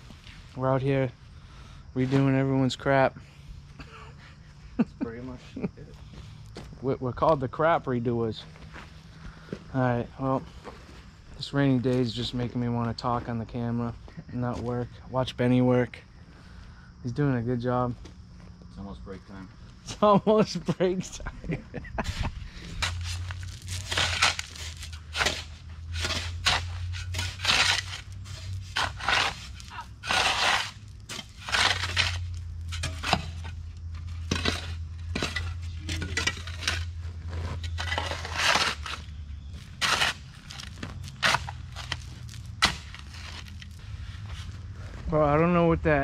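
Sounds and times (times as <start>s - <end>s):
steady low hum: 0.0s - 46.0s
shovels scraping gravelly soil: 2.0s - 3.8s, 7.5s - 14.8s, 21.6s - 45.6s.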